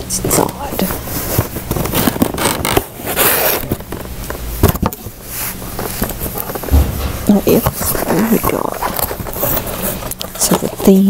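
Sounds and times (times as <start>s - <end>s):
cardboard scraping and tearing: 1.9s - 3.8s
knocks on box: 6.7s - 8.0s.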